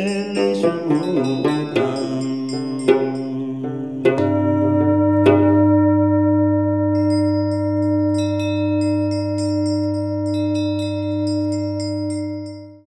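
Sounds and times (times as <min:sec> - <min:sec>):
high bell-like tinkles: 0:00.0 - 0:03.6, 0:06.9 - 0:12.9
steady ringing tone: 0:00.0 - 0:12.9
low drone: 0:03.6 - 0:12.8.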